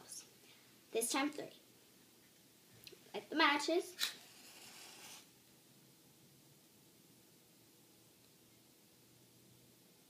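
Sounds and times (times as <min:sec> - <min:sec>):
match head hissing: 0:04.0 - 0:05.3
match scraping on box: 0:04.0 - 0:05.3.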